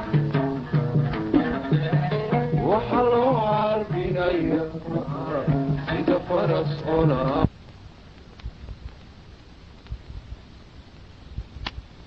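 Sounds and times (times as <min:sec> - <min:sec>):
plucked string instrument: 0:00.0 - 0:07.5
man singing: 0:01.5 - 0:07.5.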